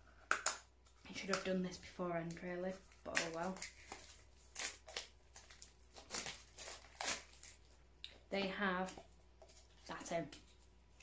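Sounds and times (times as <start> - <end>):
plastic rustling and crinkling: 2.2 - 7.8.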